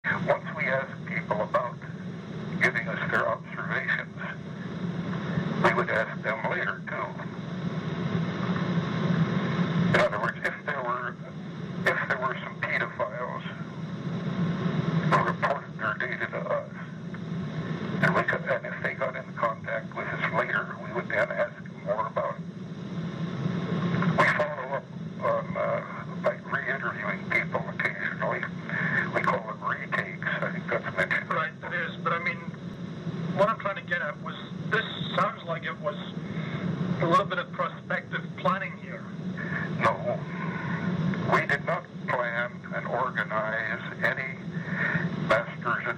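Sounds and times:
men talking muffled: 0.0 - 7.5, 9.7 - 13.9, 14.9 - 22.5, 23.8 - 45.9.

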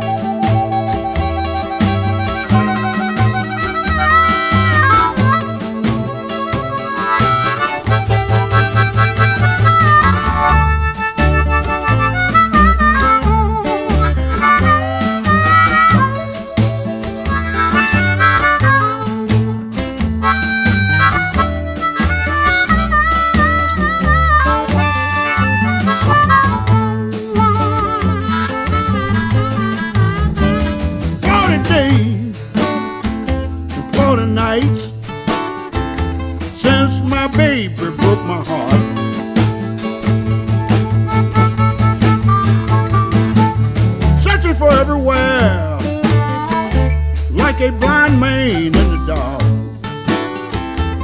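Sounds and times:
band playing steady beat: 0.0 - 51.0
harmonica solo with bent notes: 0.0 - 51.0.

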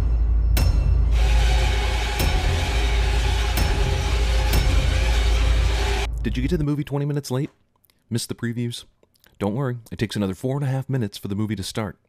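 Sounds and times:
sharp hits: 0.0 - 6.9.

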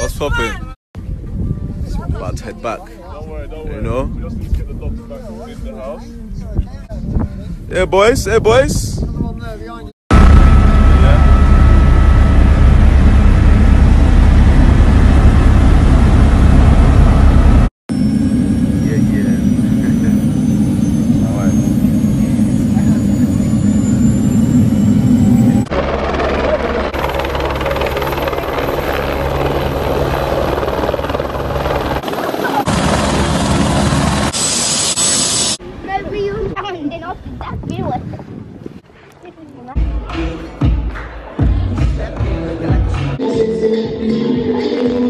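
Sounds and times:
helicopter engine and rotor drone: 10.1 - 35.6.

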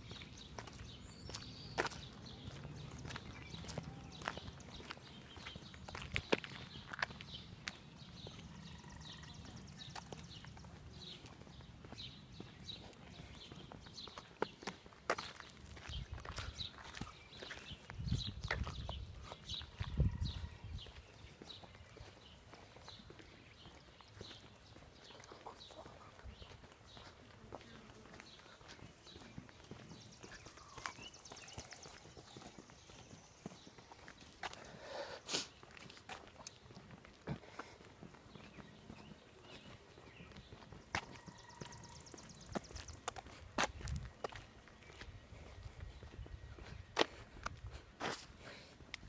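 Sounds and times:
footsteps on concrete: 0.0 - 49.0
wind noise on microphone: 15.9 - 17.0, 17.8 - 21.1, 43.5 - 44.2, 45.1 - 47.9.

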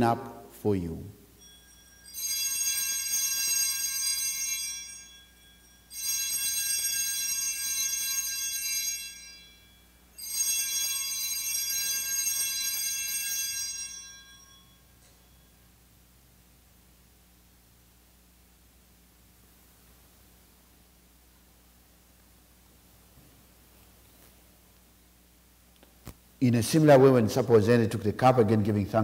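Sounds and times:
altar bells jingling: 1.2 - 15.7.

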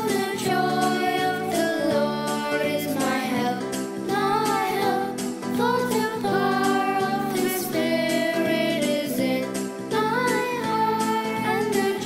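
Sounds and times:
children singing worship song: 0.0 - 12.0
instrumental backing: 0.0 - 12.0.

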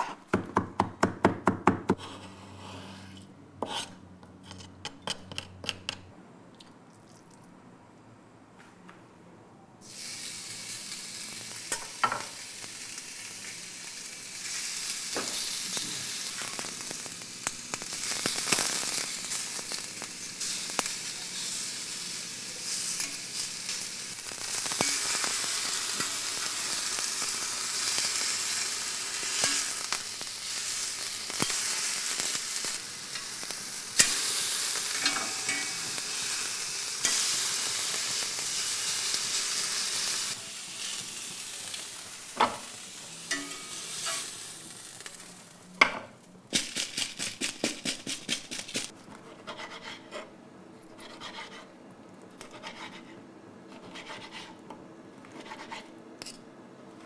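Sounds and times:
steak sizzling on grill pan: 9.9 - 45.4
metal tongs clicking on pan: 29.4 - 29.8, 35.0 - 35.8, 43.3 - 44.3.

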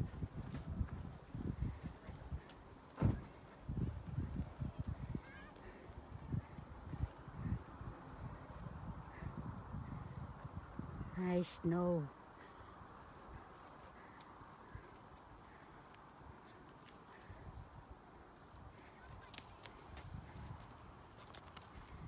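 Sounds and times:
wind buffeting microphone: 0.0 - 11.5, 17.1 - 22.0.

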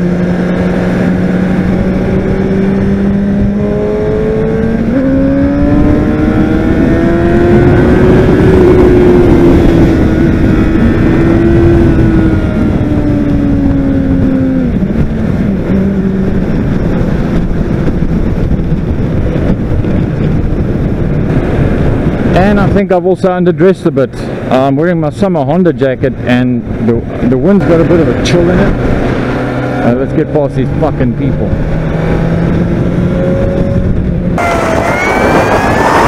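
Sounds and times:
motorcycle engine running: 0.0 - 22.4
wind noise on microphone: 0.0 - 36.0.

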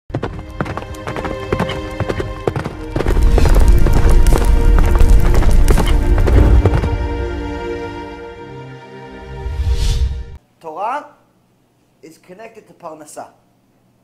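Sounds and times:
deep bass swell: 2.8 - 10.4.

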